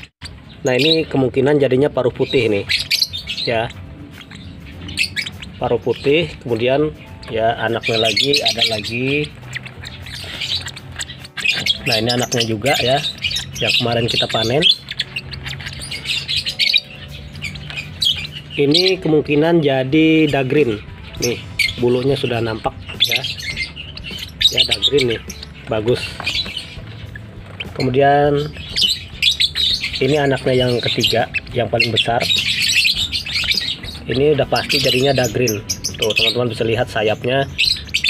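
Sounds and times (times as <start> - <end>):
lovebird chirping: 0.0 - 38.0.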